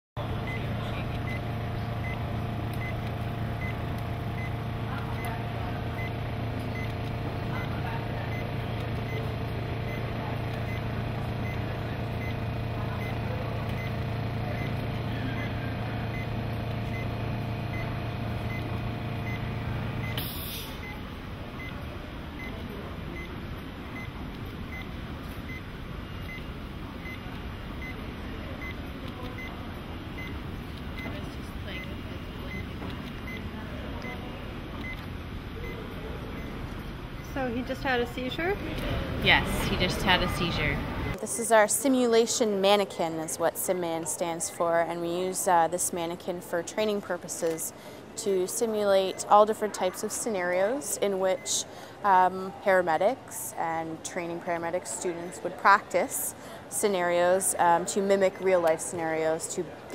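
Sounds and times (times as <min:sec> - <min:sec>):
low machine hum: 0:00.2 - 0:41.3
patient monitor beeps: 0:00.4 - 0:21.8, 0:22.4 - 0:29.6, 0:30.2 - 0:38.0, 0:39.3 - 0:41.2, 0:48.4 - 0:51.9.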